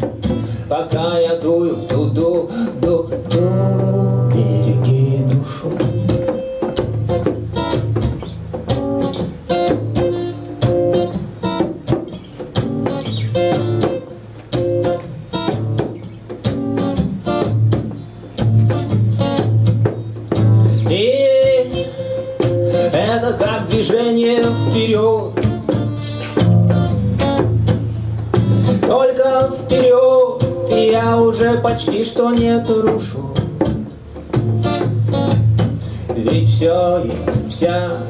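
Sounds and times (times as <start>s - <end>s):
acoustic guitar reggae strumming: 0.0s - 38.0s
person singing: 0.6s - 6.2s.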